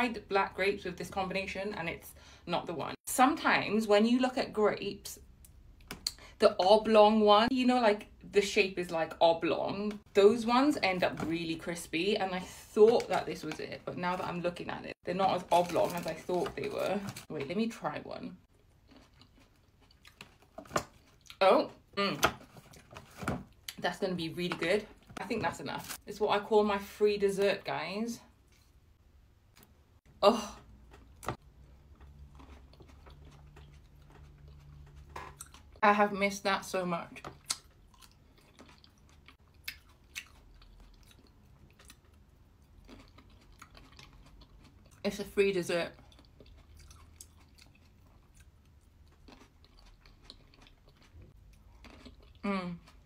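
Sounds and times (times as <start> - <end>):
grape crunching while chewed: 18.5 - 21.4, 30.6 - 35.8, 37.2 - 45.0, 45.9 - 53.0.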